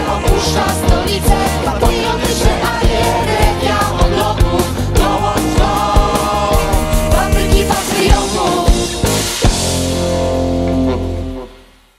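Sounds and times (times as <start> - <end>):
drum hit: 2.4 - 10.7.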